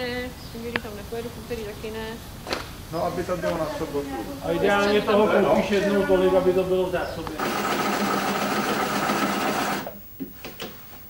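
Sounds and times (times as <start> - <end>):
electric sewing machine running: 7.4 - 9.9.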